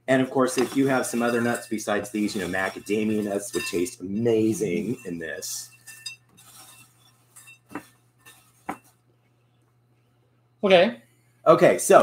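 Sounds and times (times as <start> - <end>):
cereal rustling in bowl: 0.4 - 8.8
spatula clinking against glass: 0.5 - 8.9.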